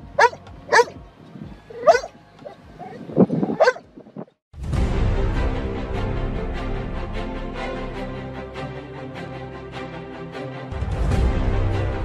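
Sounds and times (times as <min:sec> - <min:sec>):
dog yelping and whining: 0:00.2 - 0:00.9, 0:01.7 - 0:03.8
lower louder dog sound: 0:00.2 - 0:01.0, 0:01.7 - 0:03.9.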